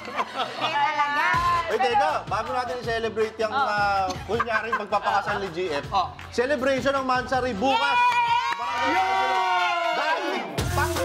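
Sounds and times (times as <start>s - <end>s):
group of people cheering: 7.5s - 10.9s.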